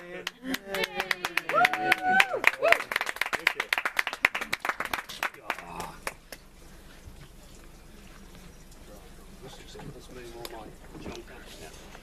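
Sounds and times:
audience applause: 0.0s - 6.3s.

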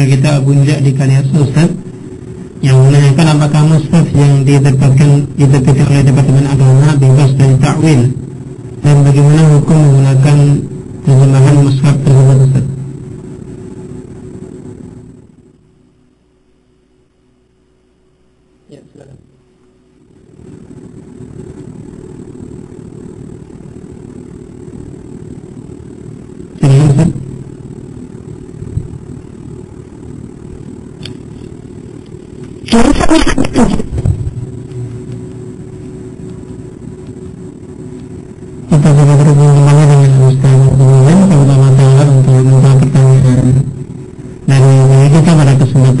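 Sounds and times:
loud pitched drone: 0.0s - 15.5s, 18.7s - 46.0s.

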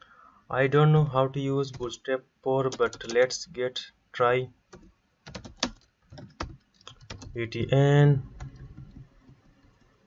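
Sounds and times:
keyboard typing: 2.7s - 3.2s, 4.7s - 7.7s, 8.3s - 9.9s.

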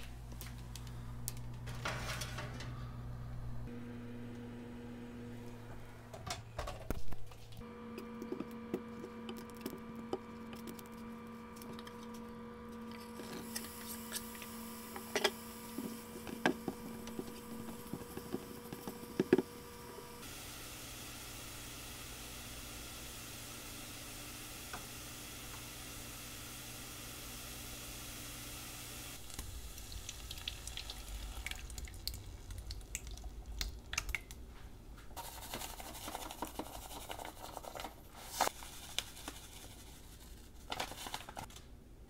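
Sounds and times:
steady hum: 0.0s - 38.5s
oven door shutting: 1.4s - 3.5s
butter sizzling in a frying pan: 20.2s - 32.2s.

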